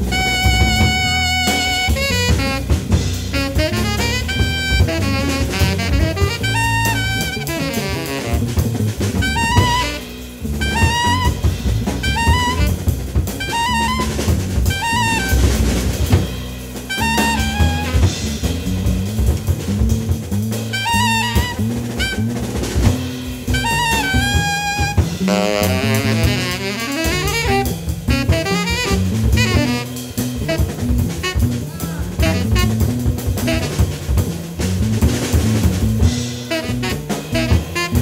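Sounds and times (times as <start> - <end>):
drum kit: 0.0 - 38.0
electric bass guitar: 0.0 - 38.0
tenor saxophone solo: 0.0 - 38.0.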